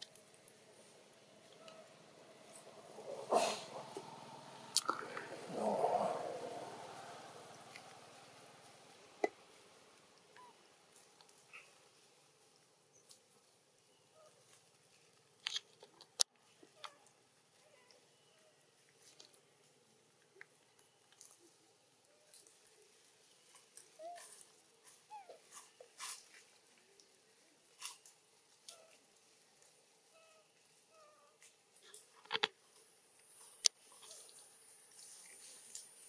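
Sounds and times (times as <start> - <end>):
small clicks and rustles: 0.0 - 3.2, 7.6 - 36.0
high steady hiss: 0.0 - 15.4, 16.2 - 36.0.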